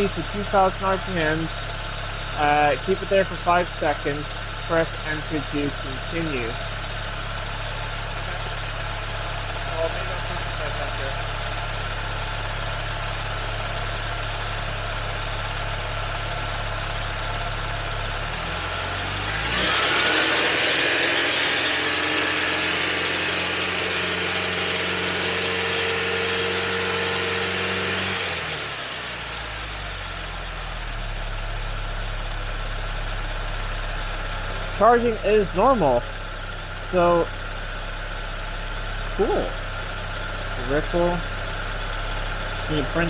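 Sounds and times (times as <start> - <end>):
car engine idling and revving: 0.0 - 43.0.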